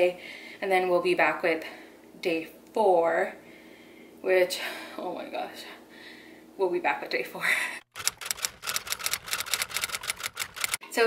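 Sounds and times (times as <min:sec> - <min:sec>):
typewriter key clacks: 0:08.0 - 0:10.8.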